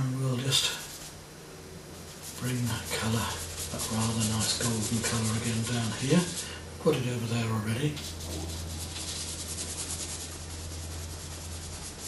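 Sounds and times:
brush scrubbing paint on canvas: 0.5s - 1.2s, 2.0s - 6.6s, 7.9s - 12.0s.

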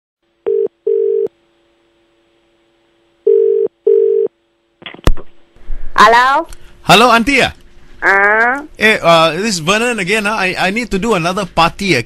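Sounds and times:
telephone ringing tone: 0.5s - 1.3s, 3.3s - 4.3s.

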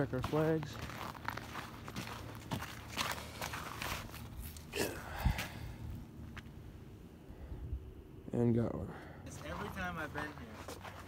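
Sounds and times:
footsteps on snowy ice: 0.0s - 4.7s, 9.3s - 11.0s.

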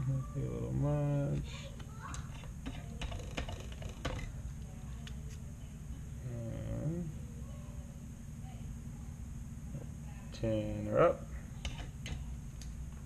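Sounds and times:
steady low hum: 0.0s - 13.0s
man humming: 6.2s - 7.2s.

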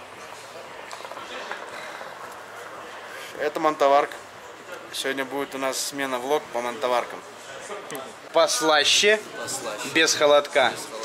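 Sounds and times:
faint background voices: 0.0s - 11.0s
room noise: 0.0s - 11.0s.

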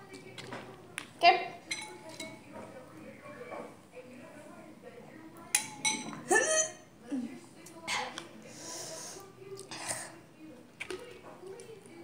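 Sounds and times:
metal spoon clinking dishes: 1.6s - 2.8s, 5.5s - 6.3s.

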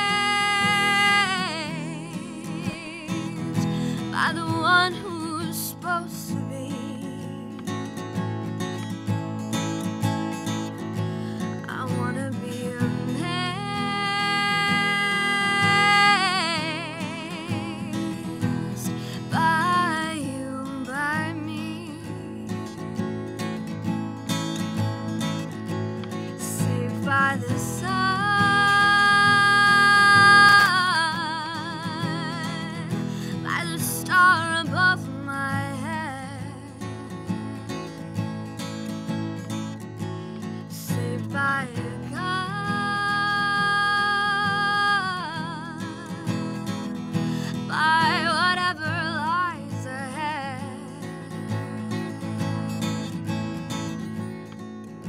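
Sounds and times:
woman singing: 0.0s - 8.0s, 10.4s - 23.6s, 26.1s - 38.8s, 40.0s - 54.4s
strummed acoustic guitar: 0.0s - 55.0s.

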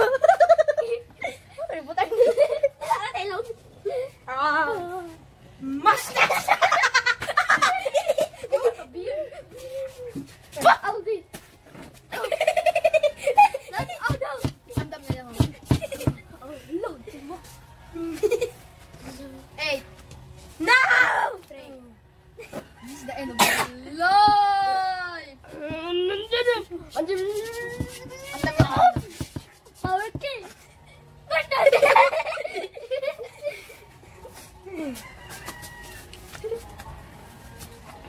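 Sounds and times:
child making wordless sounds: 20.6s - 22.0s, 23.7s - 29.2s.

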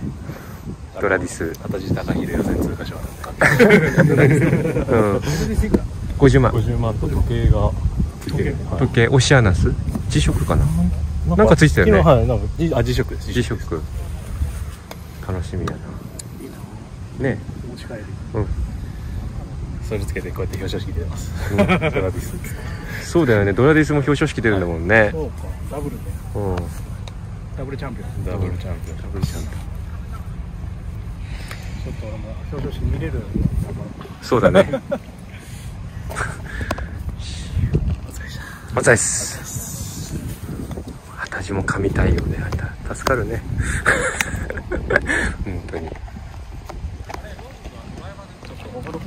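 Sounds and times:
wind rumble on microphone: 0.0s - 49.0s.

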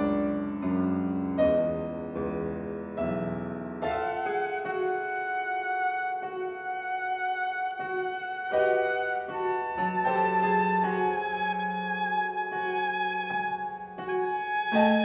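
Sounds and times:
piano: 0.0s - 15.0s
alto saxophone long held notes: 11.1s - 15.0s.

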